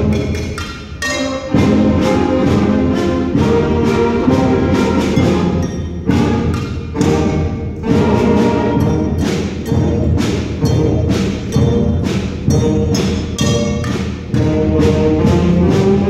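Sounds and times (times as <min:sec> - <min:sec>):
percussion beat: 0:00.0 - 0:16.0
brass and woodwind chords: 0:01.1 - 0:13.5, 0:14.3 - 0:16.0.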